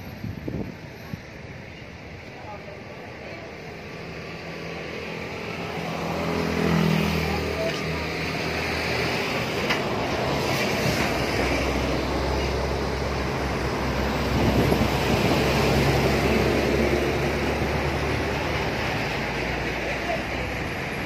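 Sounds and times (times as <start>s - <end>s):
rumble of passing vehicles: 0.0s - 21.0s
heavy vehicle passing: 3.5s - 21.0s.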